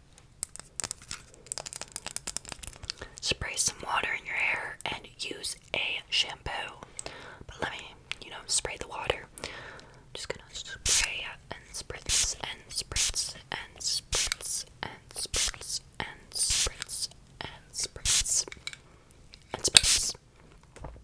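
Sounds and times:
close-up whispering: 0:03.0 - 0:09.4, 0:10.1 - 0:18.6, 0:19.4 - 0:20.2
spray bottle spritzes: 0:10.8 - 0:11.2, 0:12.1 - 0:12.4, 0:13.0 - 0:13.3, 0:14.1 - 0:14.6, 0:15.2 - 0:15.8, 0:16.4 - 0:17.1, 0:18.0 - 0:18.5, 0:19.6 - 0:20.2.

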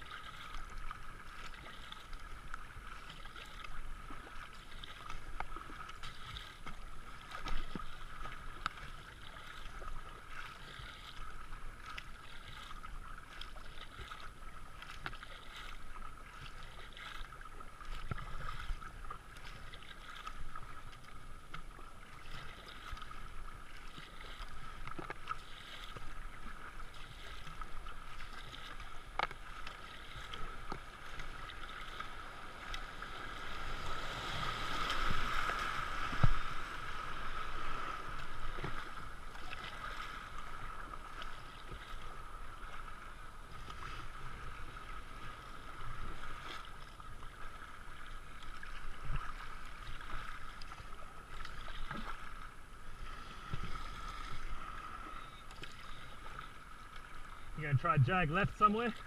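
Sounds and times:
kayak paddle splashing: 0:00.0 - 0:59.0
river water rushing: 0:21.7 - 0:53.1, 0:53.8 - 0:59.0.

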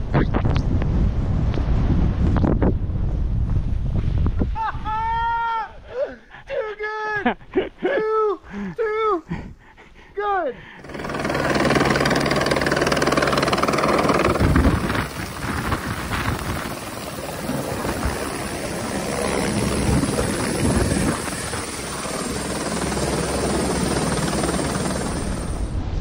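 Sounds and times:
helicopter rotor beat: 0:10.8 - 0:25.8
high turbine whine: 0:10.8 - 0:26.0.

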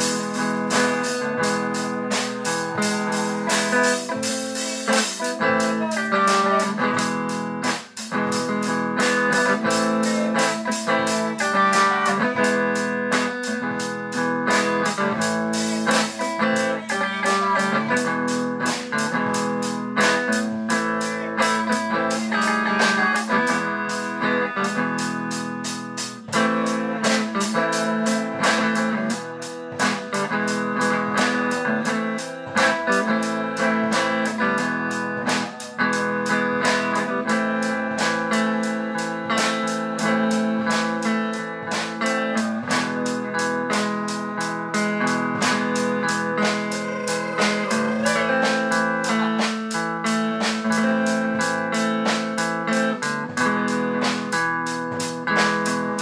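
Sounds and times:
drum kit beat: 0:00.0 - 0:56.0
guitar playing: 0:00.0 - 0:56.0.

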